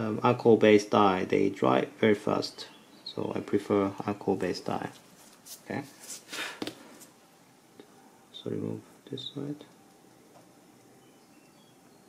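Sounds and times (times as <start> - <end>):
scrapes and rustles on leather: 5.0 - 7.2.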